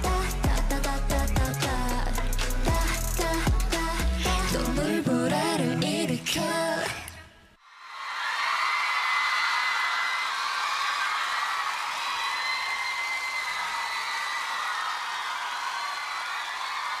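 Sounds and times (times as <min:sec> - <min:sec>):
audience cheering: 0:07.8 - 0:17.0.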